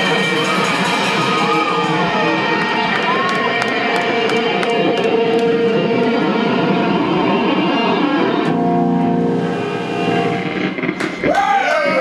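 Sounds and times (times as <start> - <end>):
amplified electric guitar: 0.0 - 12.0.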